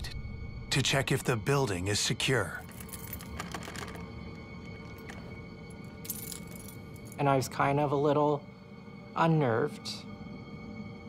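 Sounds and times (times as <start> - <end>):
low ambient drone: 0.0 - 11.0.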